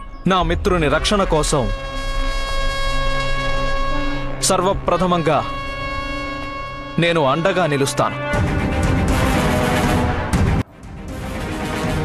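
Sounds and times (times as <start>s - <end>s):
long steady horn-like note: 0.4s - 12.0s.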